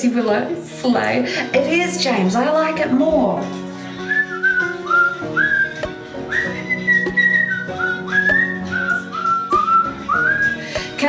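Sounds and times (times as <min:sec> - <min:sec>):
background music: 0:00.0 - 0:11.0
person whistling a tune: 0:04.0 - 0:10.8.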